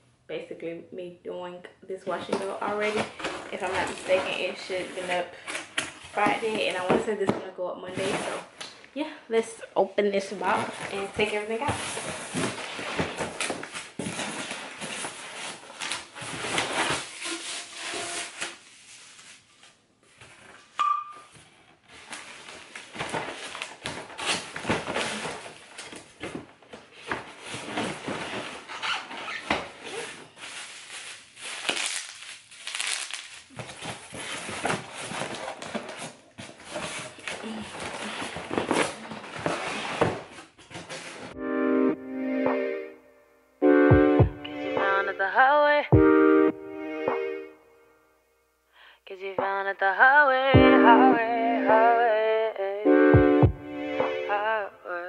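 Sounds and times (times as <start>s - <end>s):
cardboard and styrofoam handling: 2.2s - 8.6s, 10.3s - 20.8s, 21.9s - 41.4s
keyboard music: 41.4s - 48.2s, 50.5s - 54.9s.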